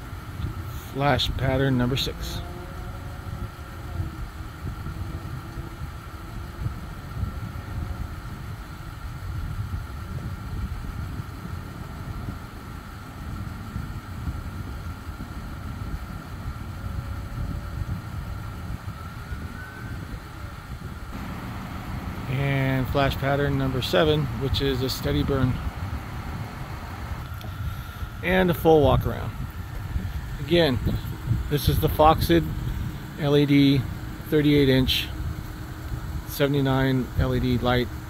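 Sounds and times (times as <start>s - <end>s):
high-pitched whine: 18.6s - 35.2s
car engine idling: 20.6s - 38.0s.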